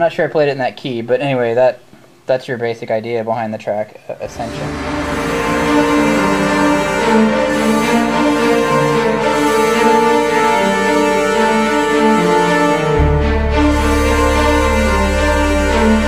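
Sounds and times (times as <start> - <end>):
orchestral fanfare chords: 4.2 - 16.0.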